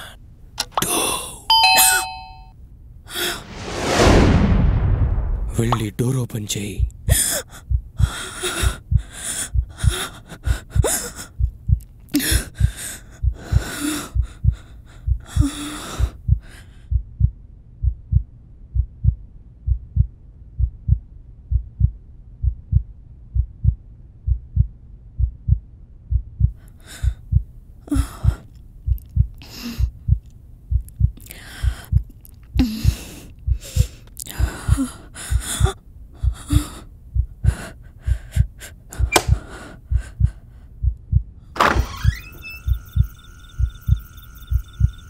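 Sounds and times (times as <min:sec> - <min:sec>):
heartbeat thumps: 0:06.8 - 0:41.4, 0:42.7 - 0:45.0
woman breathing heavily and gasping: 0:07.1 - 0:11.5, 0:12.1 - 0:17.0, 0:26.6 - 0:28.5, 0:29.4 - 0:30.2, 0:31.2 - 0:40.9.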